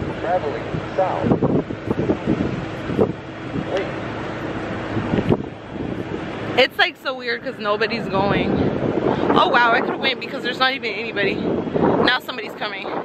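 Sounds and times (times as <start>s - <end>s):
road traffic: 0.0s - 13.0s
steady low hum: 0.0s - 13.0s
wind buffeting microphone: 0.0s - 13.0s.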